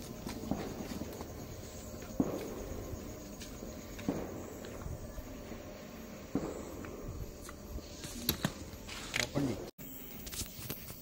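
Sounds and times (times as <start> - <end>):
footsteps on paving: 0.0 - 5.0
suitcase wheeled on paving: 0.0 - 5.7.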